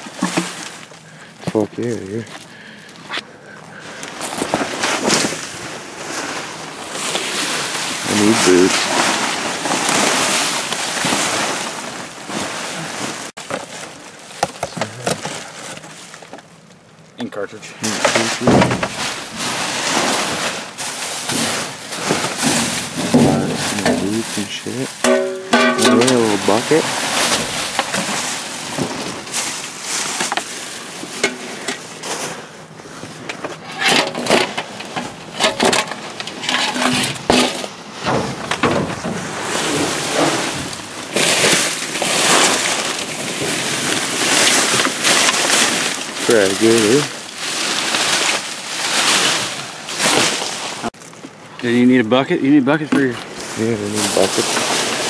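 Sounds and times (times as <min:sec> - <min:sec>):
plastic and cardboard rustling: 0:00.0 - 0:55.0.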